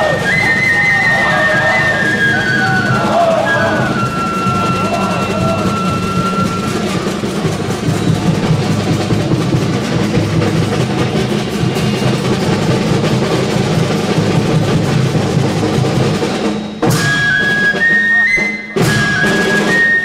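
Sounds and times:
hand cymbals: 0.0s - 20.0s.

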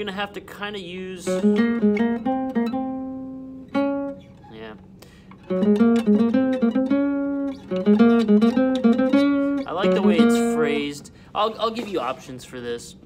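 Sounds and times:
classical guitar picked notes: 1.2s - 4.8s, 5.4s - 11.0s.

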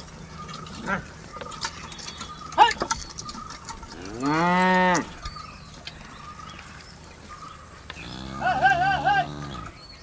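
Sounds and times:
cow mooing: 4.0s - 5.2s, 8.0s - 9.8s.

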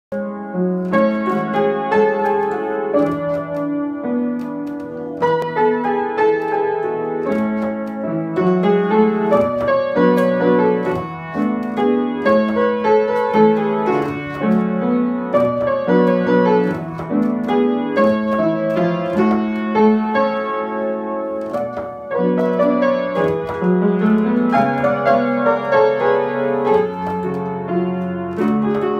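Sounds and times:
acoustic piano playing: 0.1s - 28.9s.

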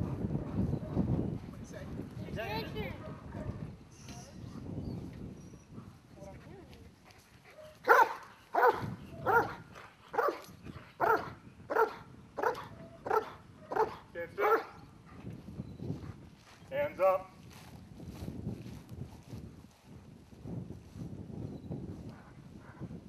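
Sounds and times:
dog barking: 2.9s - 3.6s, 7.5s - 9.6s, 10.2s - 10.4s, 11.0s - 14.8s.

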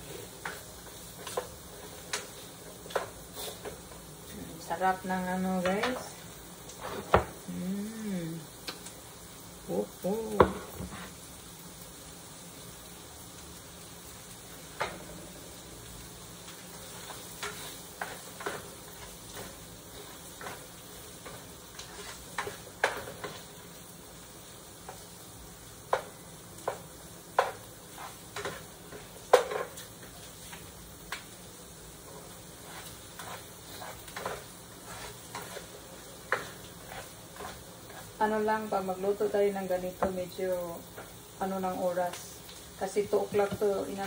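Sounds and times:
faint sizzle of frying: 0.0s - 44.0s
spatula scraping a frying pan: 16.7s - 23.6s, 27.4s - 30.6s, 32.1s - 38.2s.

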